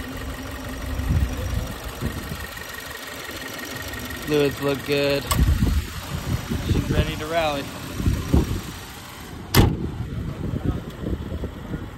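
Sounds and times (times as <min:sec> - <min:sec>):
low rumble: 0:00.0 - 0:02.8
car hood slamming shut: 0:09.5 - 0:09.9.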